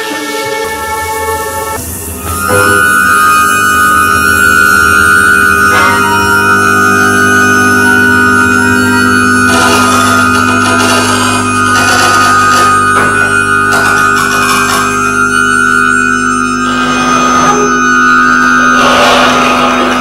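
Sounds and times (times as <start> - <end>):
bursts of noisy texture: 0.0 - 20.0
sustained drone tones: 0.0 - 20.0.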